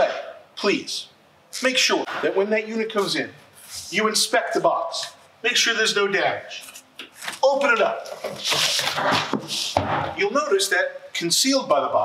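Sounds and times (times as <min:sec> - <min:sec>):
cardboard scraping and rustling: 0:08.1 - 0:10.0
thump: 0:09.0 - 0:10.2.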